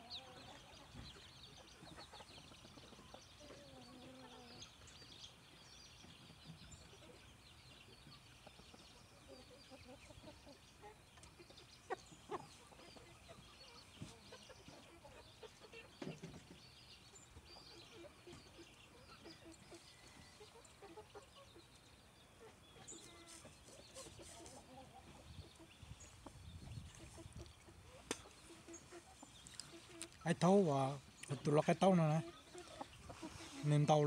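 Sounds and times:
roosters clucking: 0.0 - 34.0.

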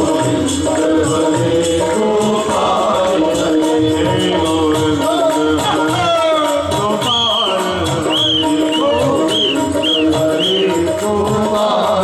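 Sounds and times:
devotional music: 0.0 - 12.0
high percussion strokes: 0.0 - 12.0
tabla strokes: 0.0 - 12.0.

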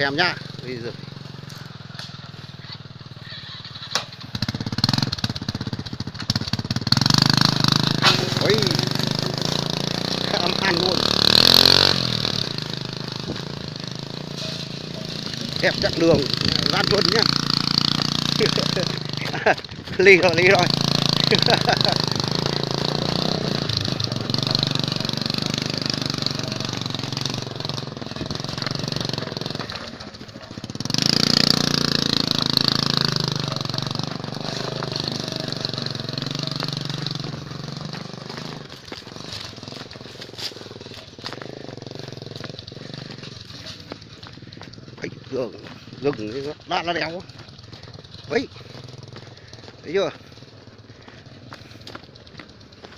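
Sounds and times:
motorcycle engine under load: 0.0 - 52.9.

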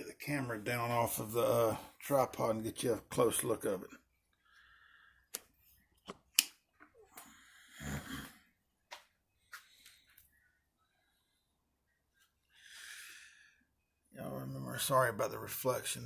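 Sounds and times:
close breathing: 4.3 - 5.4, 7.1 - 8.5, 9.4 - 13.8.

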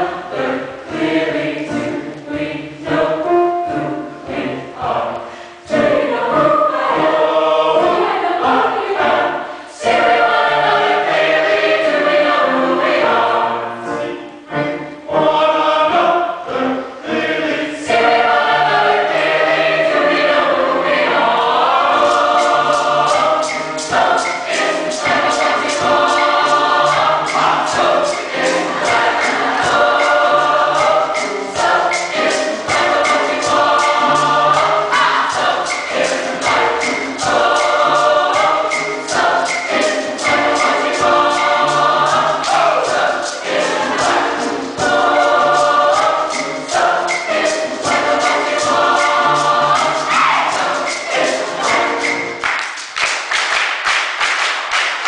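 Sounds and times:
mixed choir singing: 0.0 - 52.9
sharp beat strokes: 17.9 - 54.7.

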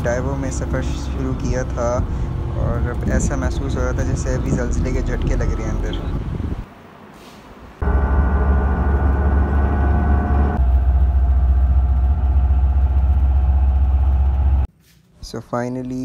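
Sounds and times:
coach engine and road rumble: 0.0 - 14.7.

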